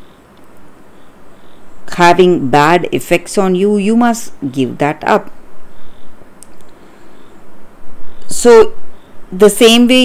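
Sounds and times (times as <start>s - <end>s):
faint room hiss: 0.0s - 10.0s
woman talking: 1.8s - 5.4s, 8.2s - 10.0s.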